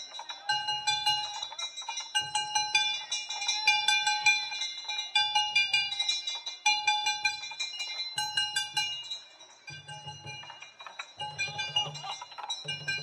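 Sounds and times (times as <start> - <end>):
metal hand gongs clanging: 0.0 - 13.0.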